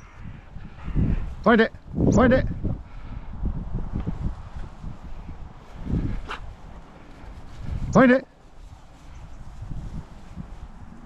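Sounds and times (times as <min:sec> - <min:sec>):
wind buffeting microphone: 0:00.0 - 0:11.0
grass rustling: 0:03.9 - 0:11.0.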